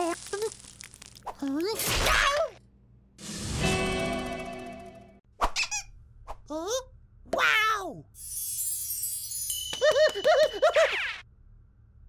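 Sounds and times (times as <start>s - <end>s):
high shimmering sparkle: 8.2s - 10.0s.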